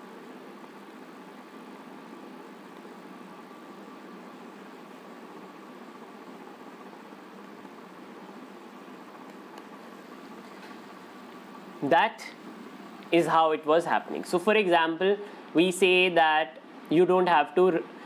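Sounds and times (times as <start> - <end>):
faint high hum: 0.0 - 18.0
room hiss: 0.0 - 18.0.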